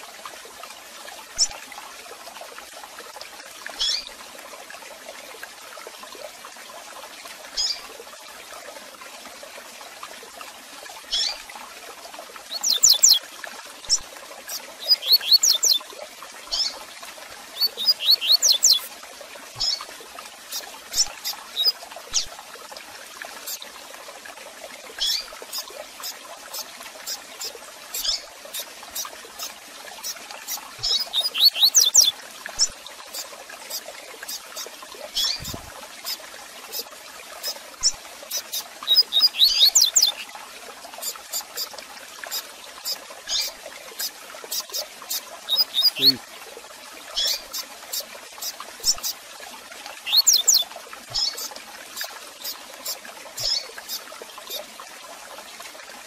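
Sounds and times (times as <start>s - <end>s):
bird chirping: 12.5s - 13.2s, 14.8s - 15.8s, 17.6s - 18.9s, 30.8s - 32.7s, 38.9s - 40.2s, 45.5s - 46.2s, 50.1s - 50.6s.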